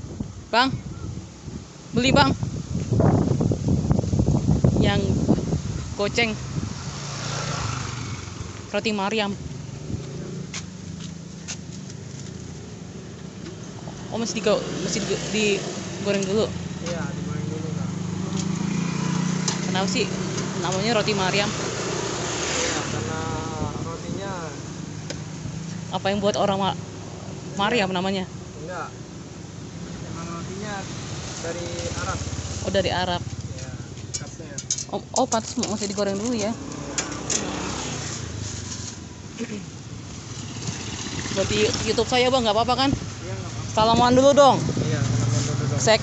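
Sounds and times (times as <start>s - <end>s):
traffic engine rumble: 0.0s - 46.0s.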